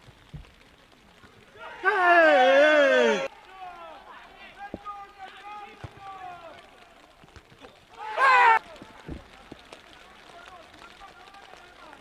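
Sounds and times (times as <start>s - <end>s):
distant shouted calls: 1.6s - 9.7s.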